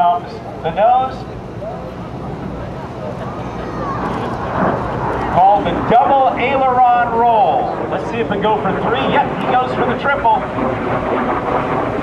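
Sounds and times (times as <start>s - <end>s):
jet engine roar: 0.0s - 12.0s.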